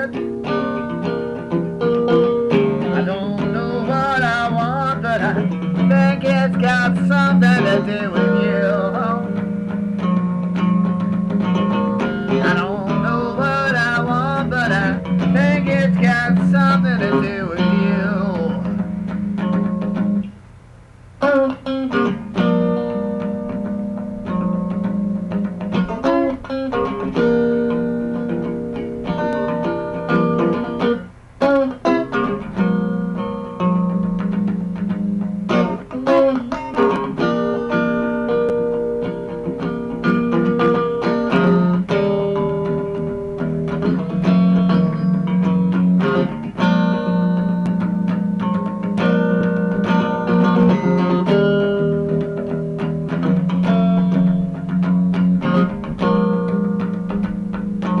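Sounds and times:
blues guitar playing: 0:00.0 - 0:58.0.

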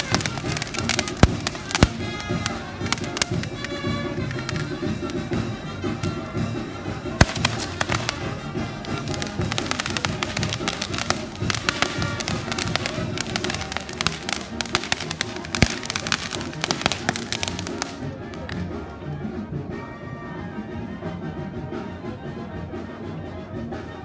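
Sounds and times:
fireworks crackling and popping: 0:00.0 - 0:18.9
band music: 0:00.0 - 0:24.0.

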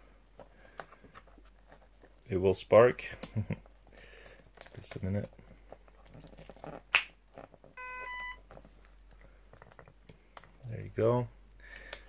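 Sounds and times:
short electronic beeps: 0:07.8 - 0:08.4
clicks of plastic connectors: 0:09.5 - 0:10.7, 0:11.5 - 0:12.0.

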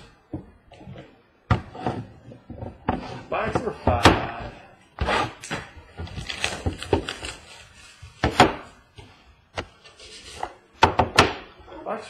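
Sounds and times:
box scraping on table: 0:05.0 - 0:05.6.

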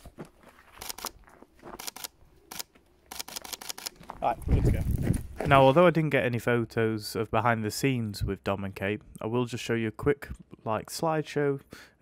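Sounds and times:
camera shutter clicks: 0:00.8 - 0:01.2, 0:01.8 - 0:04.0.

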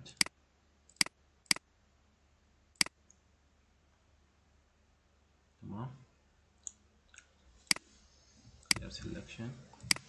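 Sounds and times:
computer mouse clicking: 0:00.9 - 0:01.6, 0:09.8 - 0:10.0.

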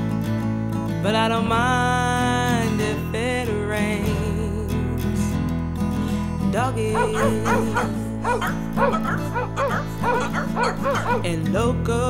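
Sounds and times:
acoustic guitar music: 0:00.0 - 0:12.0
dog yapping: 0:07.0 - 0:11.4.

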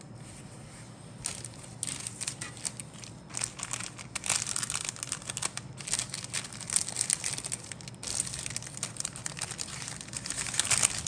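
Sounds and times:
plastic bag crinkling: 0:01.2 - 0:11.0.

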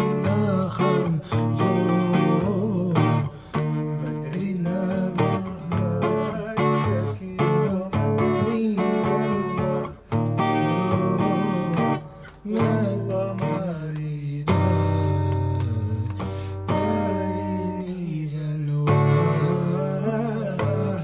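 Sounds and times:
acoustic guitar strumming: 0:00.0 - 0:21.0
man singing: 0:00.0 - 0:21.0.

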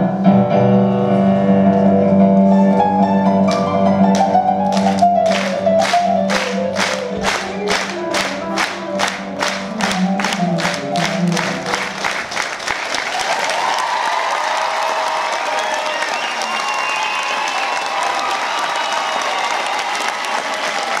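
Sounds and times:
piano chords: 0:00.0 - 0:12.8
audience applauding: 0:04.2 - 0:21.0.

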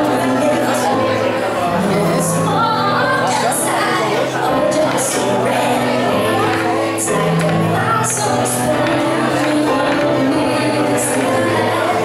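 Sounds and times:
keyboard chords: 0:00.0 - 0:12.0
woman singing into a microphone: 0:00.0 - 0:12.0.

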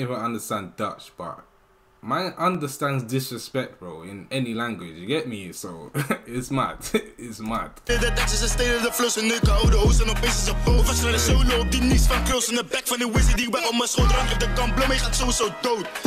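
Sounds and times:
rapping over a beat: 0:07.4 - 0:16.0
sliding bass notes: 0:07.9 - 0:12.4, 0:14.0 - 0:15.4.

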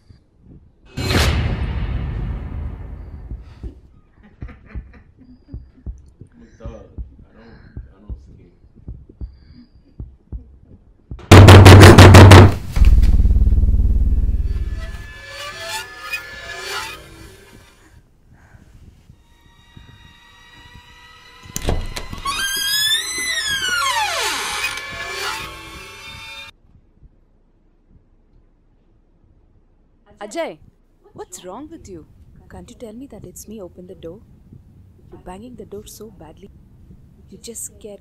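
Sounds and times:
loud crashing hit: 0:01.0 - 0:03.6, 0:11.3 - 0:15.4
low rumble: 0:11.3 - 0:15.6.

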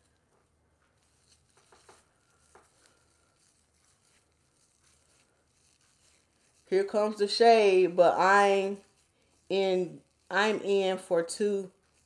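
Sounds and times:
hair rustling: 0:00.0 - 0:12.0.

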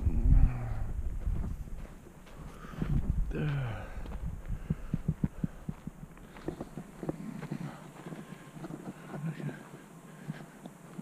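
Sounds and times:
footsteps on dry ground: 0:00.1 - 0:11.0
camera microphone rustling: 0:01.0 - 0:03.3, 0:04.1 - 0:11.0.

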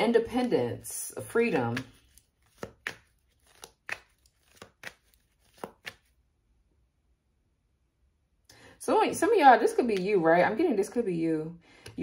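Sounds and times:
cards slapping on deck: 0:01.5 - 0:06.1.

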